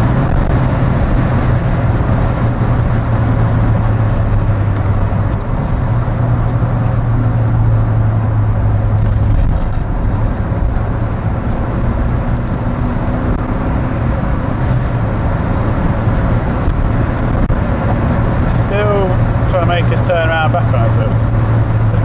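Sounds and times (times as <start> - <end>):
car engine hum: 0.0 - 22.0
tyre and road noise: 0.0 - 22.0.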